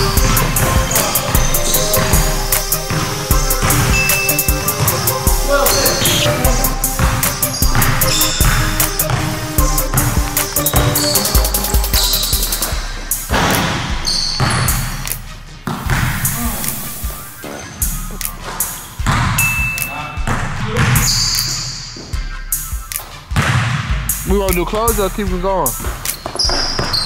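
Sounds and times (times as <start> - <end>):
background music: 0.0 - 27.0
basketball bouncing on floor: 0.2 - 5.0, 5.7 - 15.0, 15.7 - 16.8, 18.4 - 22.3, 23.4 - 24.1, 25.8 - 27.0.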